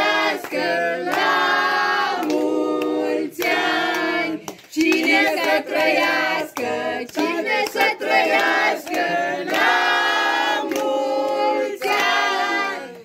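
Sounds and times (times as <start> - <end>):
group singing birthday song: 0.0 - 13.0
hand clapping: 0.0 - 13.0.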